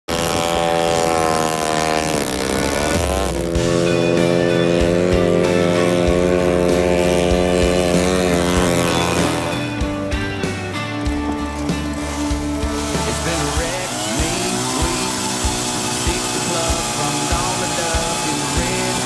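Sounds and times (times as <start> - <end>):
snowmobile engine revving: 0.0 - 19.0.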